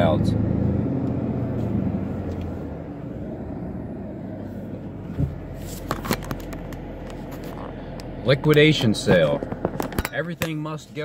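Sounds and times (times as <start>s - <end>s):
car rumble inside cabin: 0.0s - 11.0s.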